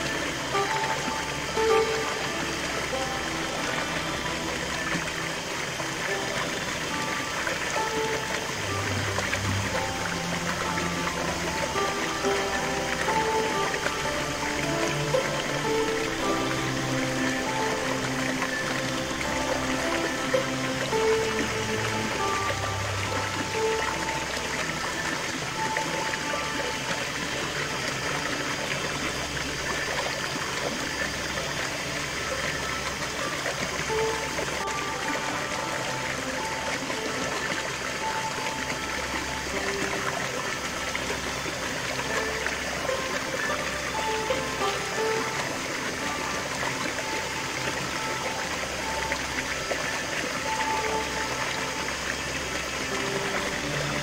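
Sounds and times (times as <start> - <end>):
calm background music: 0.0 - 54.0
stream splashing into pool: 0.0 - 54.0.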